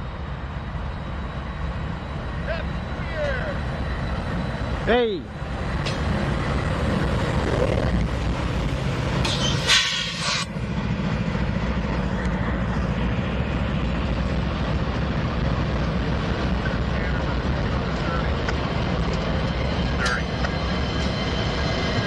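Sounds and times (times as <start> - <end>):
locomotive engine drone: 0.0 - 22.0
train wheels rolling on rails: 0.0 - 22.0
sharp squeak: 9.2 - 10.5.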